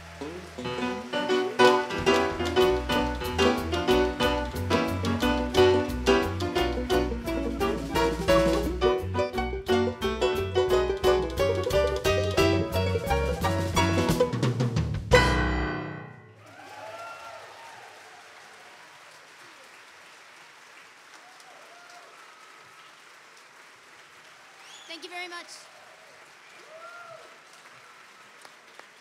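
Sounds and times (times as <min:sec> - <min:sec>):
audience applause: 0:00.0 - 0:08.8, 0:16.4 - 0:29.0
piano: 0:00.0 - 0:16.4
drum kit: 0:00.2 - 0:16.1
banjo: 0:00.6 - 0:15.8.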